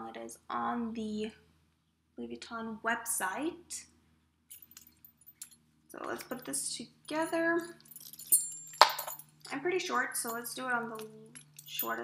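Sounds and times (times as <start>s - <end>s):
metal clasps clinking: 4.5s - 12.0s.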